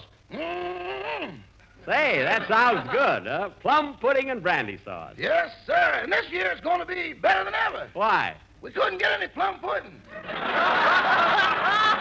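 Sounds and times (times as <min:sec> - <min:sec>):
studio audience laughing: 0:10.1 - 0:12.0.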